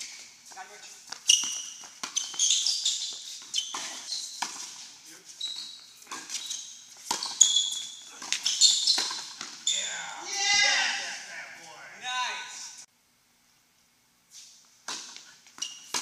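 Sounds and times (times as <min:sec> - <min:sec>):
sneakers squeaking on court: 0:00.0 - 0:10.0, 0:14.9 - 0:16.0
racket hitting tennis ball: 0:01.1 - 0:05.0, 0:07.0 - 0:09.6, 0:14.8 - 0:16.0
player shouting: 0:09.7 - 0:12.8.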